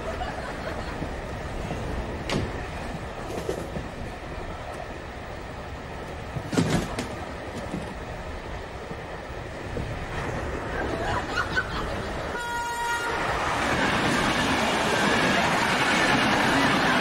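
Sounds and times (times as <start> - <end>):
railway carriage rumble: 0.0 - 17.0.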